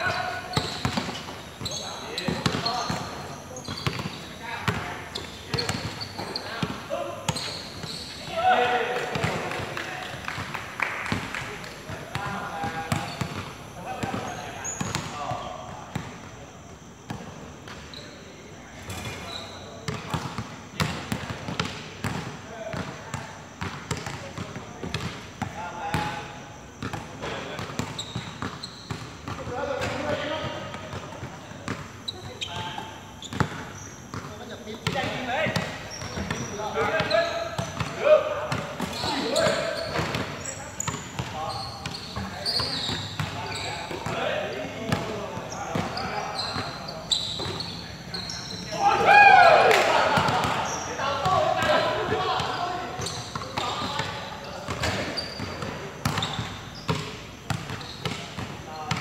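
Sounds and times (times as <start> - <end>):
players calling out: 0.0 - 15.7, 27.9 - 59.0.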